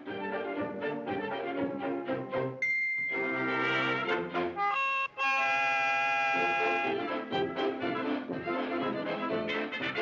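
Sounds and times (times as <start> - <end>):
brass band cartoon music: 0.0 - 10.0.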